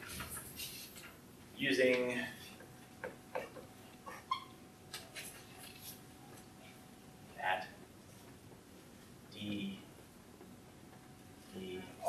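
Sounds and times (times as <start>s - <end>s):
marker squeaking on whiteboard: 3.0s - 5.9s.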